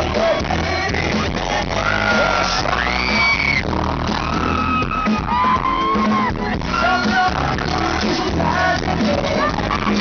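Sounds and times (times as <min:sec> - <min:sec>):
audience yelling and whooping: 0:00.0 - 0:10.0
live pop band music: 0:00.0 - 0:10.0
man singing amplified: 0:00.0 - 0:10.0.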